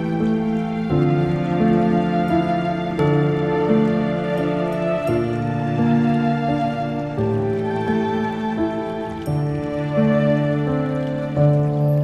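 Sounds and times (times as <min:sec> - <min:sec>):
slow soft piano music: 0:00.0 - 0:12.0.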